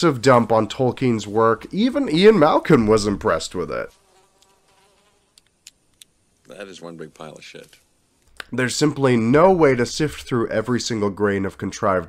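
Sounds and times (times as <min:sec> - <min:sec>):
flies buzzing: 0:01.7 - 0:06.0.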